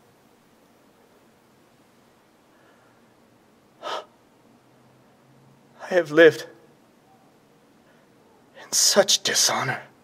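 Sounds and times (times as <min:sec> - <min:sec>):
man gasping: 0:03.8 - 0:04.2.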